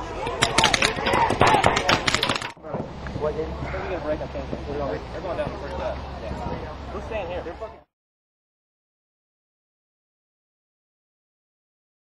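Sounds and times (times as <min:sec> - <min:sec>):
people shouting: 0:00.0 - 0:02.5
paintball markers firing: 0:00.2 - 0:02.6.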